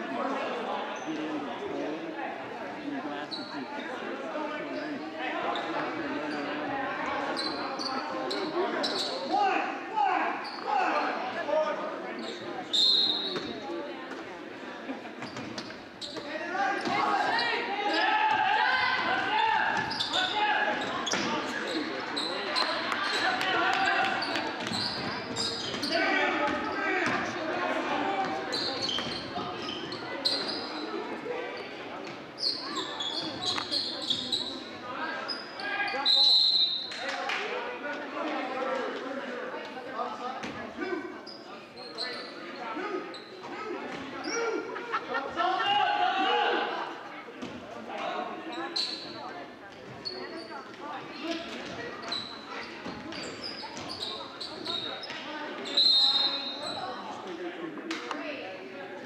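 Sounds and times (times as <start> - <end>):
sneaker squeaks: 3.2 - 4.0, 4.7 - 9.4, 10.4 - 11.1, 12.1 - 13.7, 15.2 - 18.1, 19.0 - 27.4, 28.2 - 37.0, 41.2 - 44.7, 48.4 - 57.1
people shouting in a gym: 7.6 - 11.5, 16.2 - 29.2, 42.1 - 48.7.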